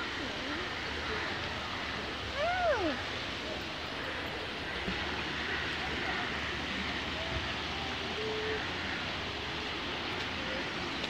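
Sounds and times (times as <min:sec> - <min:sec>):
faint distant voices: 0:00.0 - 0:11.0
stream water flowing: 0:00.0 - 0:11.0.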